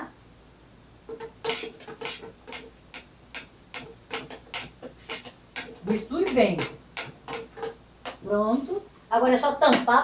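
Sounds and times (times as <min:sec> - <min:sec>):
spoon scraping metal kettle: 0:01.1 - 0:08.2.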